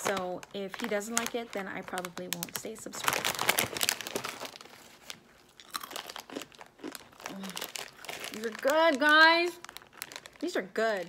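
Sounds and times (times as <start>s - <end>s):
plastic snack wrapper crackling: 0.0s - 11.0s.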